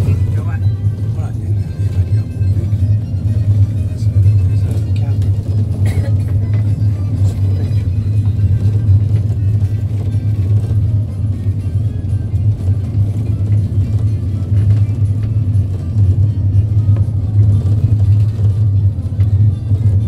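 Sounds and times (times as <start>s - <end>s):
music playing: 0.0s - 20.0s
vehicle interior drone: 0.0s - 20.0s.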